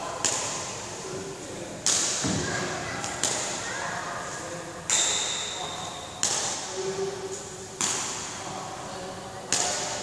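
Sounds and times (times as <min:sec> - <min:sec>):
racket hitting shuttlecock: 0:00.2 - 0:00.7, 0:01.8 - 0:03.6, 0:04.9 - 0:06.7, 0:07.8 - 0:08.4, 0:09.5 - 0:10.0.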